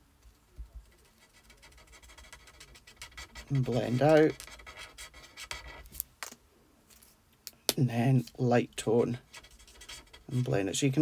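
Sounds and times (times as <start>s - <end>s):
marker scratching on card: 0.3s - 6.0s, 9.1s - 10.7s.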